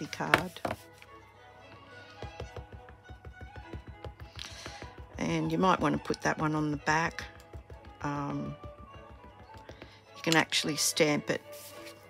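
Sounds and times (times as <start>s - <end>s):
quiet background music: 0.0s - 12.0s
ink pad tapping on stamp: 2.2s - 10.4s.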